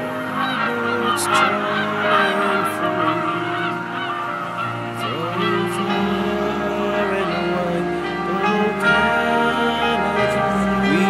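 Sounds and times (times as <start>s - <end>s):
geese honking: 0.0s - 11.0s
music with long held notes: 0.0s - 11.0s.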